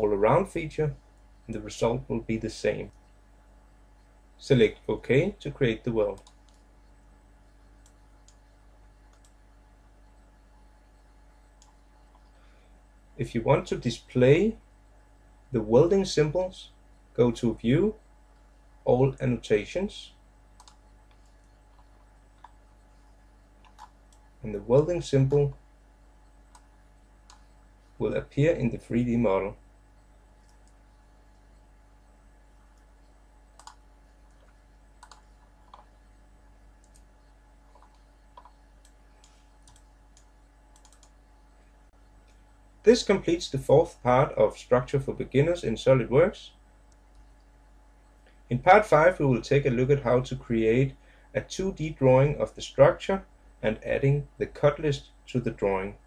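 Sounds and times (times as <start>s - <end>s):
steady low hum: 0.0s - 56.0s
computer mouse clicks: 6.1s - 7.0s, 7.6s - 9.4s, 11.4s - 12.4s, 20.6s - 23.0s, 23.6s - 24.3s, 26.5s - 27.5s, 30.4s - 31.6s, 32.7s - 36.0s, 36.8s - 41.2s.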